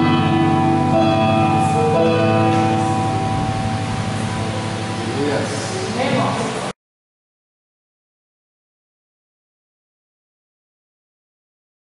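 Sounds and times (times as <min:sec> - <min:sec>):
steady low bass: 0:00.0 - 0:06.7
sustained keyboard chords: 0:00.0 - 0:06.7.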